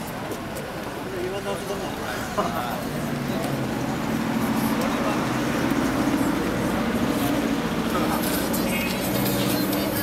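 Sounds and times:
street traffic: 0:00.0 - 0:10.0
vehicle engine drone: 0:00.0 - 0:10.0.

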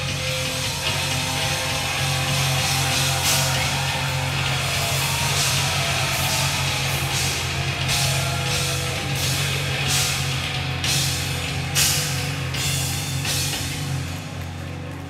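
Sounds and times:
bass guitar: 0:00.0 - 0:15.0
drum kit: 0:00.0 - 0:15.0
electric guitar: 0:00.0 - 0:15.0.

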